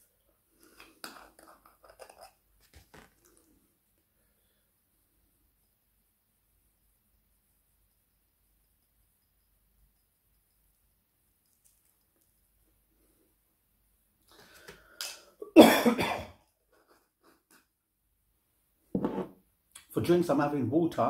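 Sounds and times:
man clearing throat: 15.4s - 16.4s
man coughing: 15.4s - 16.4s
man speaking: 19.8s - 21.0s.

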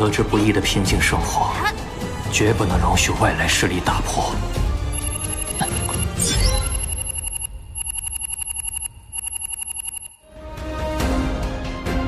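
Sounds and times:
communicator electronic beeping trill: 5.0s - 10.2s.

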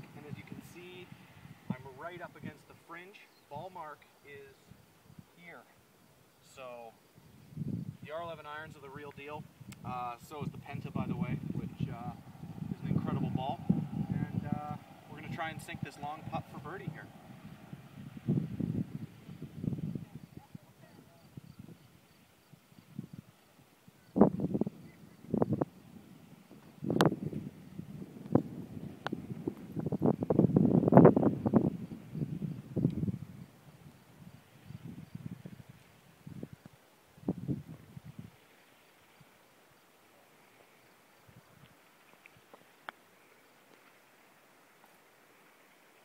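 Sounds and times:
wind buffeting microphone: 0.0s - 2.6s, 7.2s - 38.4s.

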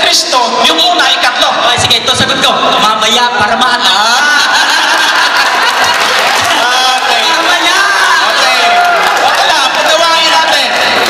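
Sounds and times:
man laughing into microphone: 3.9s - 6.2s.

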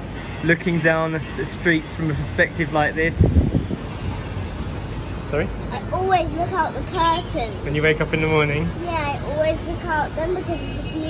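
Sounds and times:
distant street traffic: 0.0s - 11.0s.

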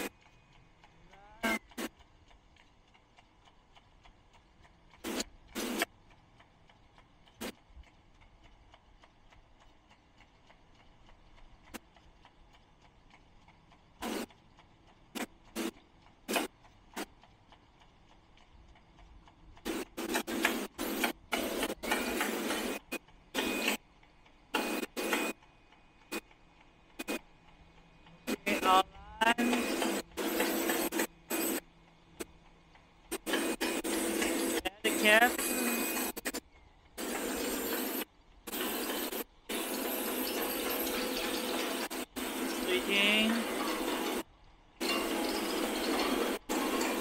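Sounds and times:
machine hissing bursts: 5.0s - 5.9s, 14.0s - 14.3s, 15.1s - 17.1s, 19.6s - 23.8s, 24.5s - 25.4s, 28.2s - 32.3s, 33.1s - 36.4s, 37.0s - 47.0s.

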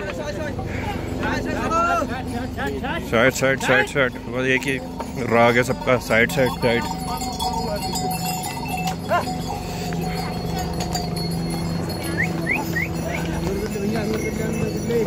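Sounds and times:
crowd chatter: 0.0s - 15.0s
harness bells jingling: 0.2s - 15.0s
hooves clopping on stone: 4.4s - 15.0s.

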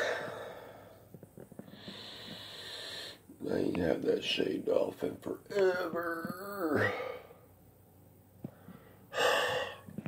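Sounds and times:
man gasping breath: 1.7s - 3.2s, 8.5s - 10.0s.

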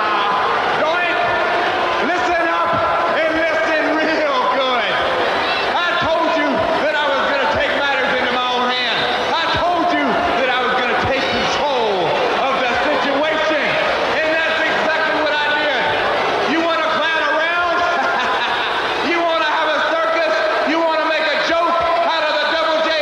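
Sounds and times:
man speaking: 2.0s - 5.0s, 5.7s - 23.0s.

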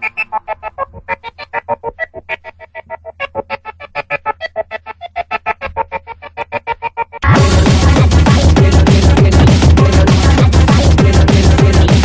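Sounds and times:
rapid pitched synth notes: 0.0s - 12.0s.

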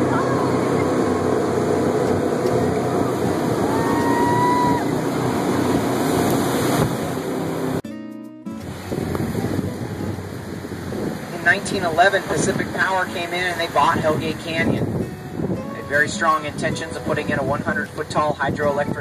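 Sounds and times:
jet boat engine: 0.0s - 7.8s, 8.6s - 19.0s
wind and spray: 0.0s - 7.8s, 8.6s - 19.0s.

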